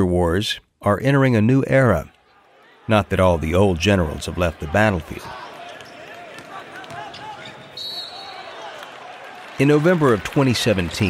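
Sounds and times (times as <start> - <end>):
ball bouncing on a court: 5.8 - 7.6.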